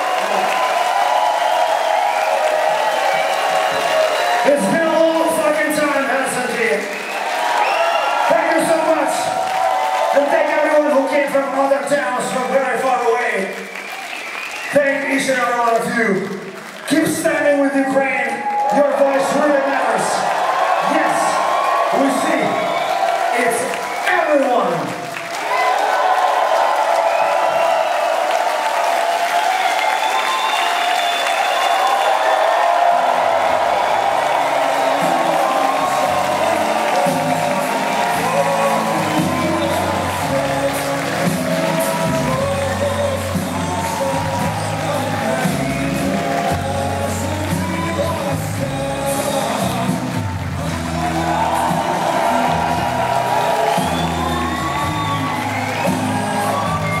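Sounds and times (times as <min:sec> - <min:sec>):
crowd cheering and whooping: 0:00.0 - 0:12.7, 0:16.9 - 0:57.0
loud music with singing: 0:31.8 - 0:57.0.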